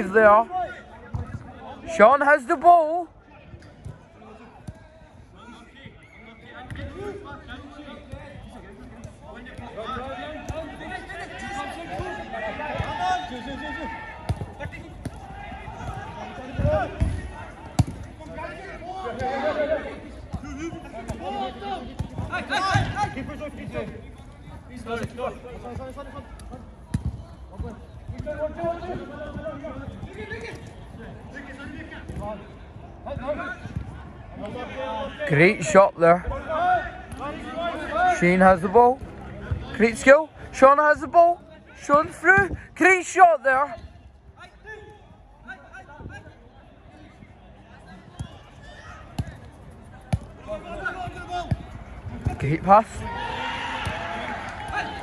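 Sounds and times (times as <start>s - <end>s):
players calling out: 47.2s - 55.0s.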